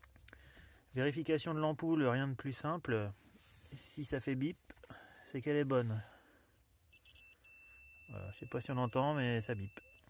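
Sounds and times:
multimeter continuity beeping: 0:06.9 - 0:10.0.

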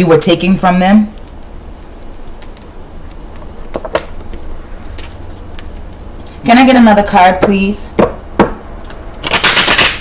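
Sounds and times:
steady low hum: 0:00.0 - 0:09.2.

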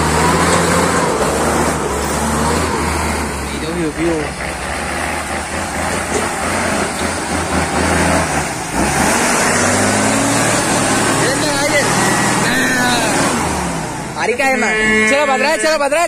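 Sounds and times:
truck engine labouring: 0:00.0 - 0:16.0.

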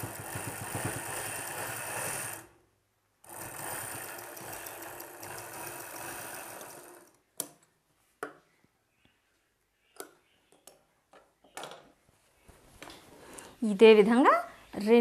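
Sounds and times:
sewing machine stitching: 0:00.0 - 0:02.5, 0:03.2 - 0:07.2.

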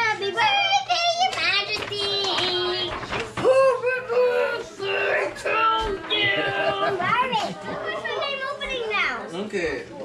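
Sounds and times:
young children chattering and squealing: 0:04.0 - 0:09.4.

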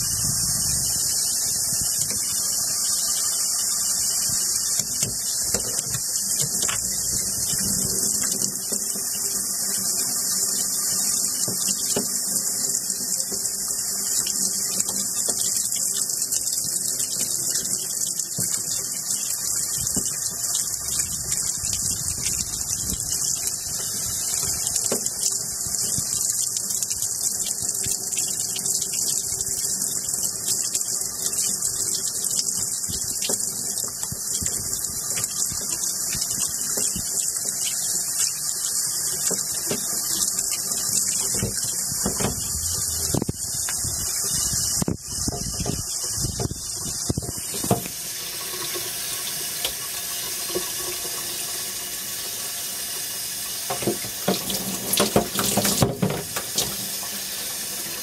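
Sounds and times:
water spraying from shower head: 0:00.0 - 0:58.0
knocks and splashes in tub: 0:53.7 - 0:56.8.

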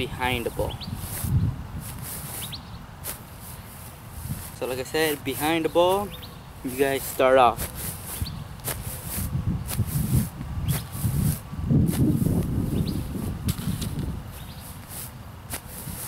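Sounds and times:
cleats scuffing on grass: 0:00.0 - 0:16.0.

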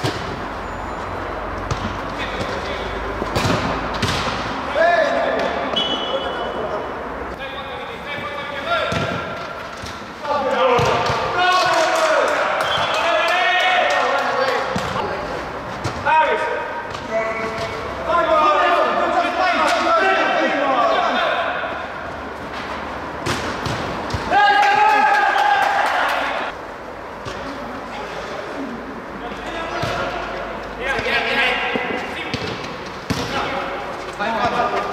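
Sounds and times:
players' voices: 0:01.2 - 0:34.9
football kicks echoing: 0:01.6 - 0:04.6, 0:08.8 - 0:11.4, 0:23.2 - 0:24.4, 0:31.7 - 0:33.6
players shouting: 0:10.2 - 0:15.4, 0:16.0 - 0:22.2, 0:24.1 - 0:26.6.

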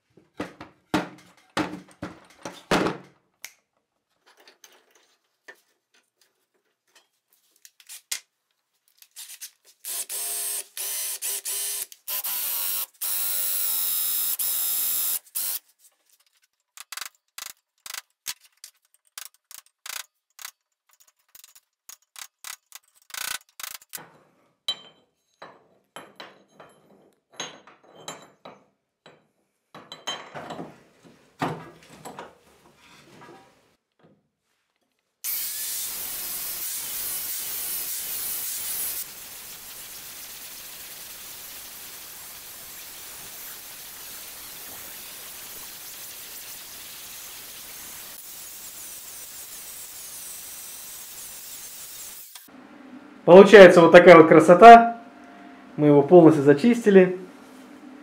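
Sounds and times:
power tool running: 0:09.8 - 0:15.6, 0:35.2 - 0:41.9, 0:46.6 - 0:53.2.

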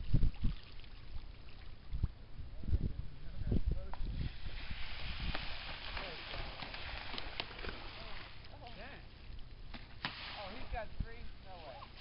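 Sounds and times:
wind rumble on microphone: 0:00.0 - 0:07.0
fish splashing at water surface: 0:04.2 - 0:08.8, 0:09.7 - 0:10.8.

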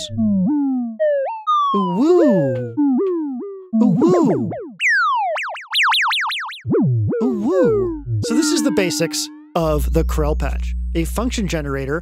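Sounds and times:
synth notes at random pitches: 0:00.0 - 0:12.0.

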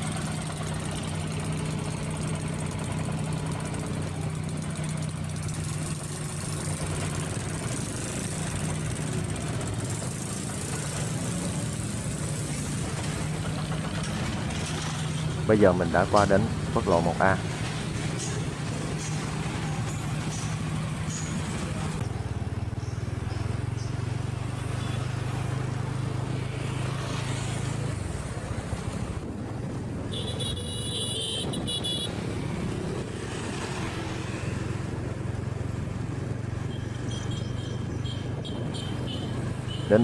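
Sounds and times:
motorbike engine running: 0:00.0 - 0:14.8
road and traffic noise: 0:00.0 - 0:40.0.

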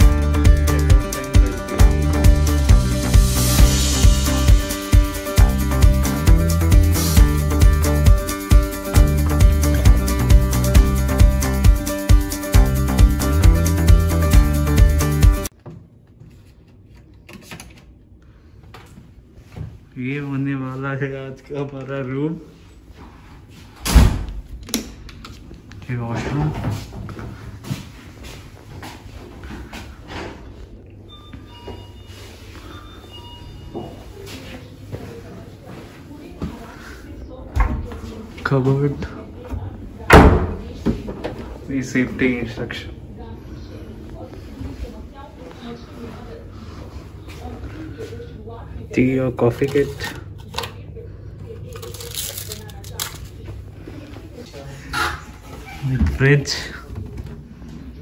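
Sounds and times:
wooden door thud: 0:40.1 - 0:40.7
sachets crinkling and rustling: 0:51.6 - 0:53.4.

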